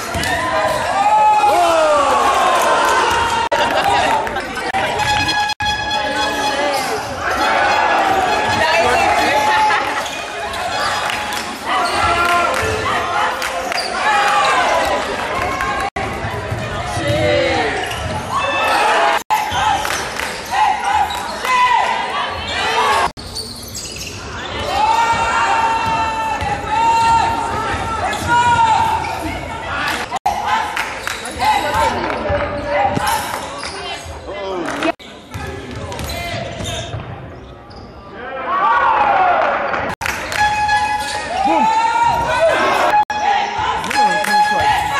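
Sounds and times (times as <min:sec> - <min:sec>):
players' voices: 0:00.0 - 0:44.9
sneaker squeaks: 0:04.9 - 0:12.3, 0:13.6 - 0:14.9, 0:17.6 - 0:21.6, 0:22.3 - 0:24.7, 0:31.0 - 0:34.2, 0:35.1 - 0:38.2, 0:39.7 - 0:41.7.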